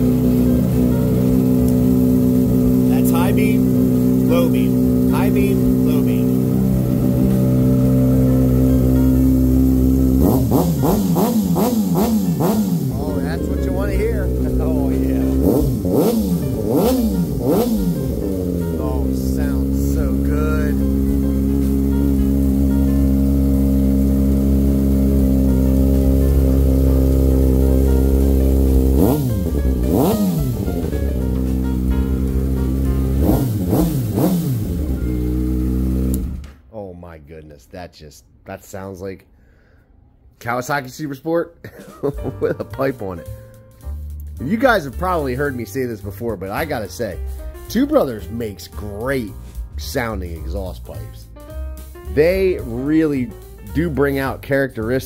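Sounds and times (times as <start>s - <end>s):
motorcycle engine idling and revving: 0.0s - 36.6s.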